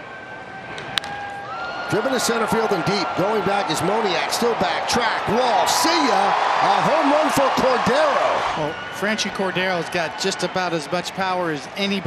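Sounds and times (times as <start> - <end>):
ballpark crowd noise: 0.0 - 12.0
baseball bat crack: 0.8 - 1.4.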